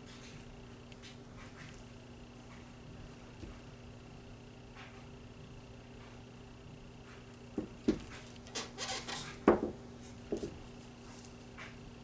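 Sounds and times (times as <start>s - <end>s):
canvas knocking on tabletop: 9.4s - 10.6s.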